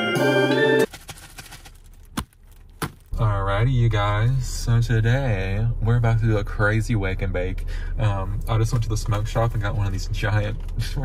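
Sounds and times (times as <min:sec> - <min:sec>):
low hum inside car: 0:01.9 - 0:11.0.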